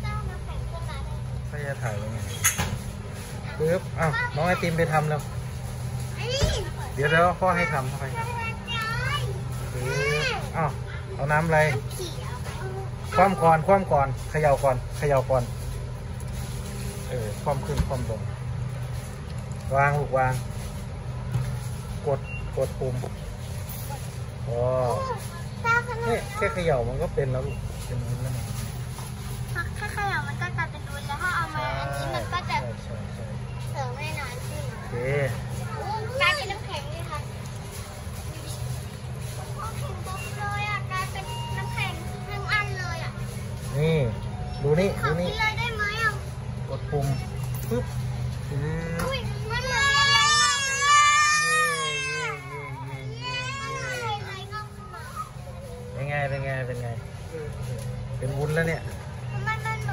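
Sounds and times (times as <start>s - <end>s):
refrigeration hum: 0.0s - 59.9s.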